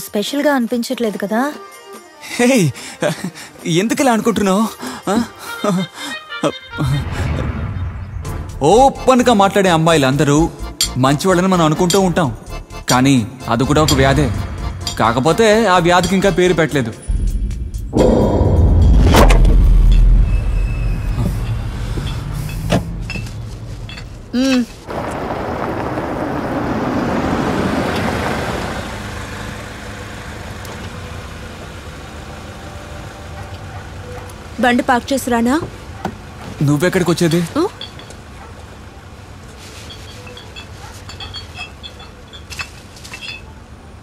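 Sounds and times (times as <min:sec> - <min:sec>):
car engine rumbling: 0:13.5 - 0:44.0.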